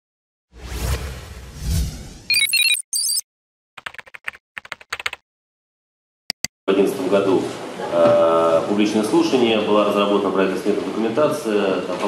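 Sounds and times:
high electronic beeps: 2.3s - 3.2s.

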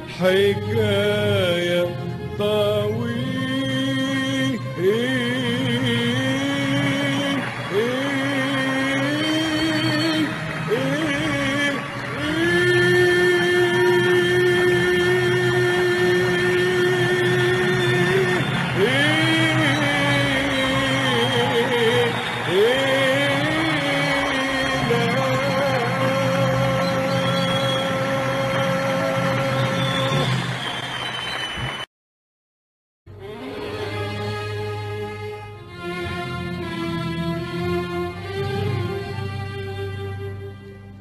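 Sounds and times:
orchestral music with sliding notes: 0.0s - 30.6s, 33.1s - 41.0s.

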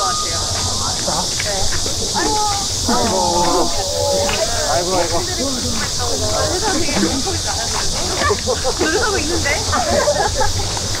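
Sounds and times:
cicadas chorus: 0.0s - 11.0s
people talking: 0.0s - 11.0s.

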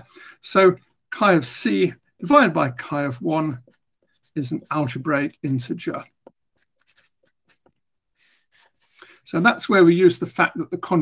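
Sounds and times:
marker writing on paper: 2.3s - 9.2s.

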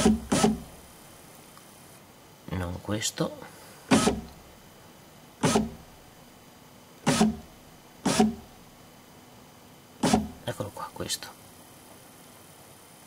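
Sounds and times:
power window motor whirring: 0.0s - 0.8s, 3.9s - 4.4s, 5.4s - 5.9s, 7.1s - 7.5s, 8.1s - 8.5s, 10.0s - 10.4s.

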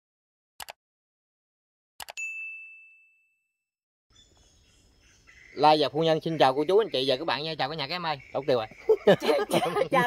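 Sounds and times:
faint outdoor background: 2.0s - 10.0s
bright ding: 2.2s - 3.5s.

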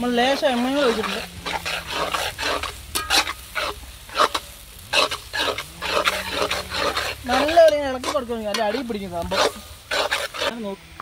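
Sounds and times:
metal spatula scraping a wok: 0.0s - 10.8s
onions frying in oil: 0.0s - 11.0s.

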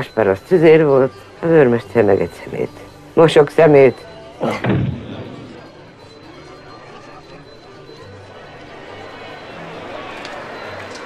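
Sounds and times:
murmur of voices: 0.0s - 11.0s
room noise: 4.4s - 6.4s.

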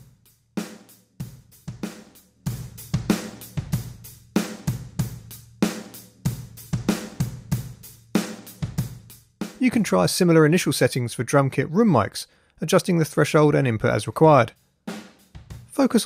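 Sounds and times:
drum kit beat: 0.0s - 10.7s, 13.2s - 16.0s.

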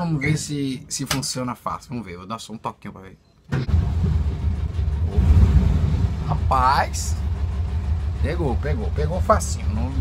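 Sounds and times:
engine rumbling: 3.5s - 10.0s.

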